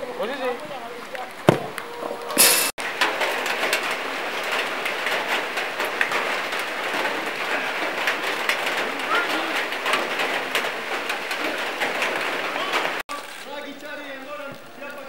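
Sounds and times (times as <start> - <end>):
rain pattering: 0.0 - 15.0
faint voices: 6.8 - 15.0.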